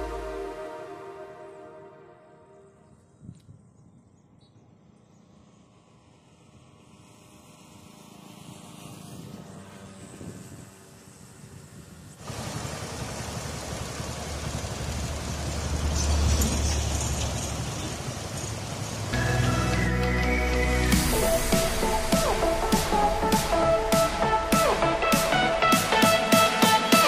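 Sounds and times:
background music: 0:00.0 - 0:03.0, 0:19.2 - 0:27.0
outdoor ambience: 0:00.0 - 0:27.0
loud steady rushing noise: 0:05.6 - 0:27.0.

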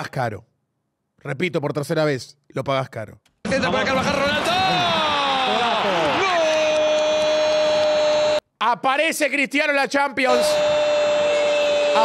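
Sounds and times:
commentator shouting goal: 0:10.2 - 0:12.0.

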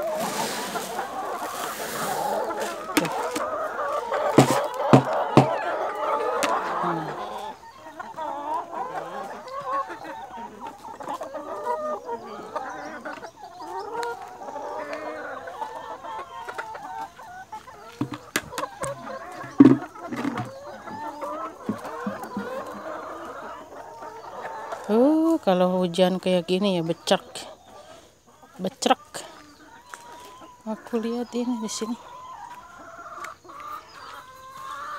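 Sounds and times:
hens clucking: 0:00.0 - 0:34.9
sharp knocks: 0:04.4 - 0:05.6, 0:18.0 - 0:18.6, 0:19.5 - 0:20.5.

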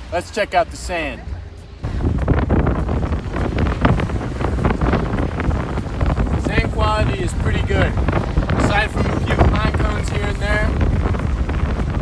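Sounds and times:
wind buffeting microphone: 0:00.0 - 0:12.0
man speaking: 0:08.6 - 0:10.8.

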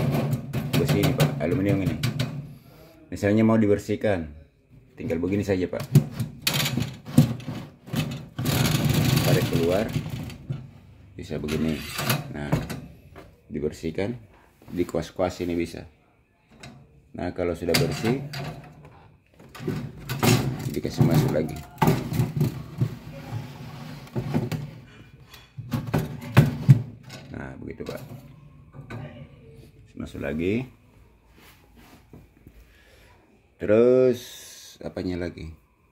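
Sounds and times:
metal rack scraping and rattling: 0:05.8 - 0:10.7, 0:11.3 - 0:12.9, 0:17.6 - 0:18.8, 0:19.5 - 0:29.1.

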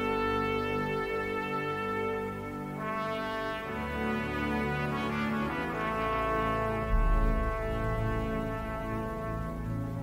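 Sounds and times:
slow brass music: 0:00.0 - 0:10.0
deep low brass note: 0:05.7 - 0:10.0.

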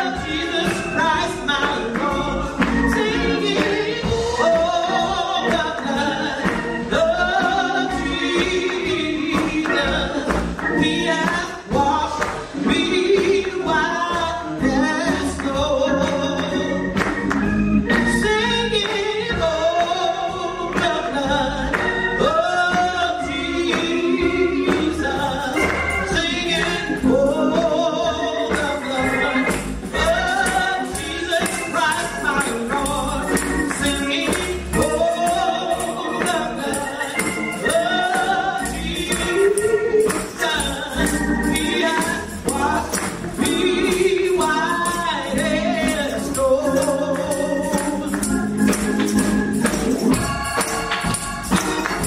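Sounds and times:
gospel singing by several voices: 0:00.0 - 0:52.0
instrumental backing: 0:00.0 - 0:52.0.

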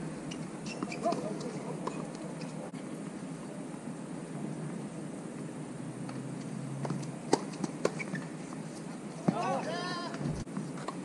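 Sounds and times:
racket hitting tennis ball: 0:06.8 - 0:08.1
person shouting: 0:09.3 - 0:10.1.

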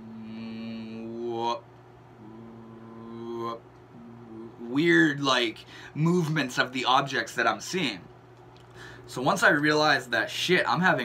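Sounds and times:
man humming: 0:00.0 - 0:05.5.

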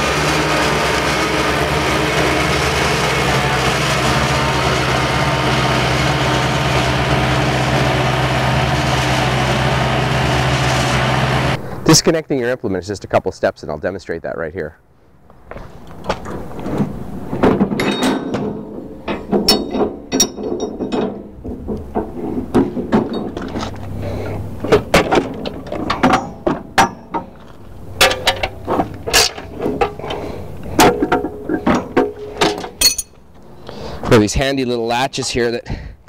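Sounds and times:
metal hitch parts clanking: 0:15.9 - 0:34.1.

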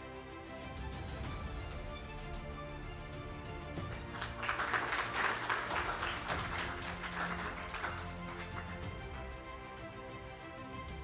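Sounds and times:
background music: 0:00.0 - 0:11.0
audience applauding: 0:03.9 - 0:09.4.

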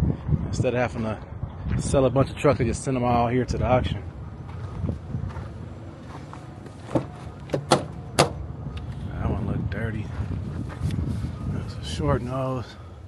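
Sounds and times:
low rumble: 0:01.2 - 0:13.0
truck door latch clicking: 0:06.9 - 0:08.4.

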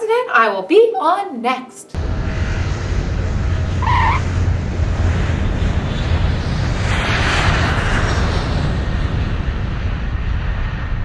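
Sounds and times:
airplane engine noise: 0:01.9 - 0:11.0.

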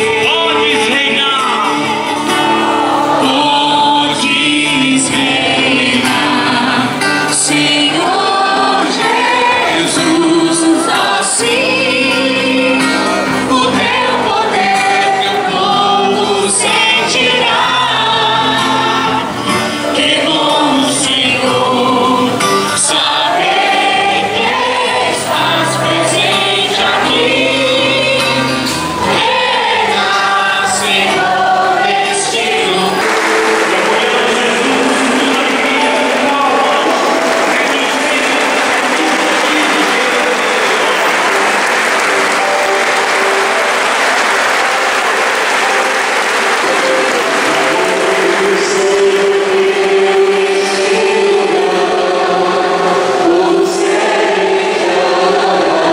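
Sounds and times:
choir singing a hymn: 0:00.0 - 0:55.9
crowd applauding: 0:00.0 - 0:55.9.

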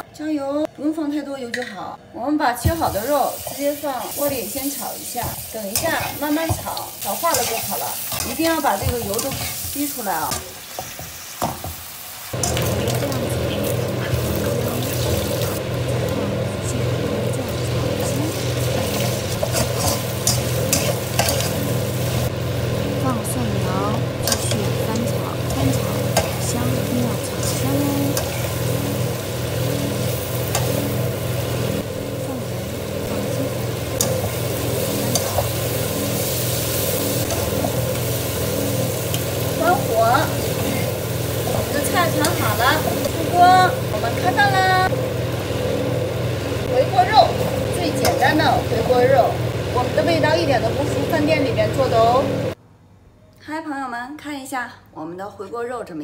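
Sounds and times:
meat sizzling in oil: 0:02.7 - 0:16.0, 0:16.6 - 0:52.6
metal spatula scraping wok: 0:05.4 - 0:11.4, 0:18.0 - 0:22.6, 0:23.2 - 0:44.6
steady low hum: 0:12.3 - 0:52.6.

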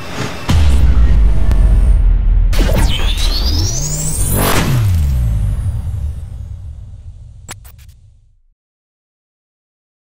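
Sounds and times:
high electronic whine rising: 0:00.4 - 0:08.1
low electronic tone sliding down: 0:00.5 - 0:07.5.

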